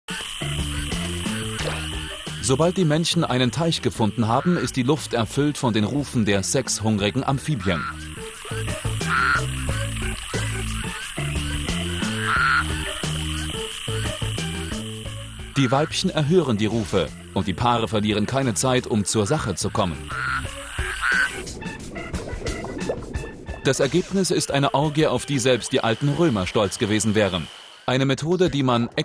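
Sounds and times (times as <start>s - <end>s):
toads calling in chorus: 0.1s - 5.3s, 6.9s - 21.6s
background music: 0.1s - 29.0s.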